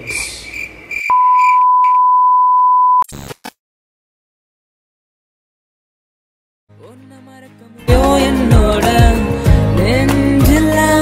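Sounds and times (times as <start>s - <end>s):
electronic test-tone beep: 1.1s - 3.0s.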